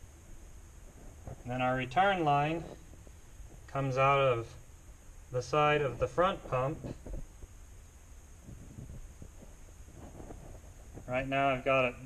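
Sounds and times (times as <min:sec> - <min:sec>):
steady hiss with low rumble: 0:00.0 - 0:12.0
faint rustles and taps: 0:00.3 - 0:03.8, 0:06.0 - 0:07.6, 0:08.4 - 0:11.2.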